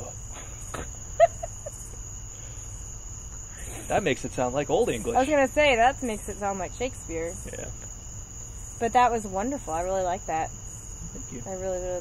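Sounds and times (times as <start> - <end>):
person speaking: 3.7 - 5.6.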